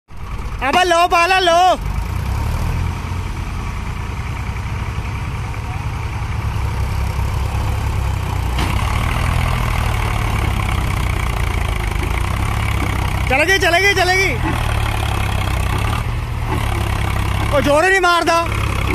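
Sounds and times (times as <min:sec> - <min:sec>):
tractor diesel engine under load: 0:00.1 - 0:18.9.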